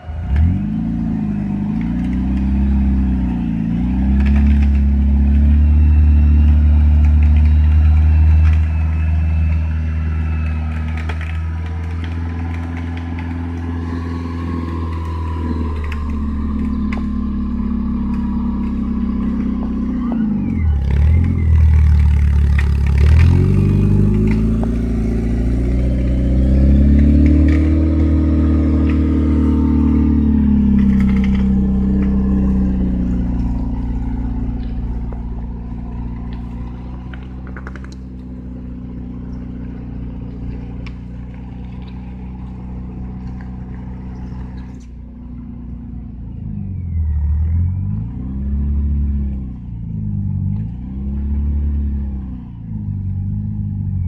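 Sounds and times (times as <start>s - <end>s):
engine running under load: 0.0s - 54.0s.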